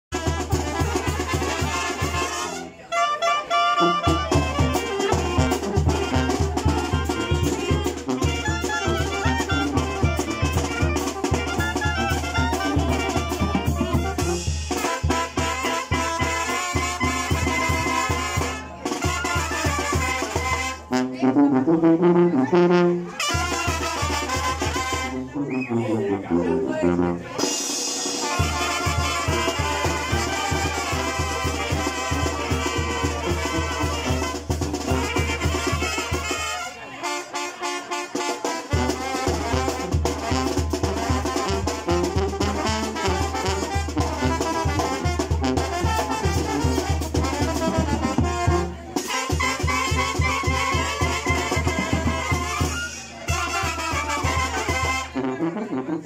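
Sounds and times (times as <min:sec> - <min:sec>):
drums: 0:00.0 - 0:02.6, 0:03.6 - 0:25.7, 0:26.4 - 0:55.3
brass band playing: 0:00.0 - 0:56.0
tuba bass line: 0:00.2 - 0:56.0.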